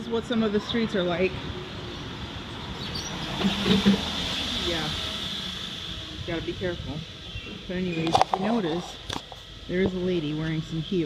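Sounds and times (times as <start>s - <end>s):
low street rumble: 0.0s - 11.0s.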